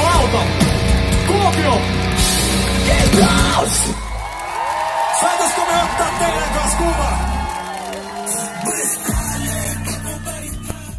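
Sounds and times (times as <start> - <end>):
live rock band playing: 0.0 - 4.4
fans whooping and yelling: 2.8 - 10.9.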